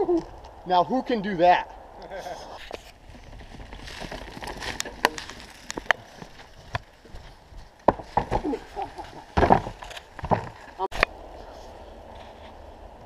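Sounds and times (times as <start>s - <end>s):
bike tyre rumble on dirt: 2.8s - 13.0s
bike rattling clicks and knocks: 7.8s - 10.8s.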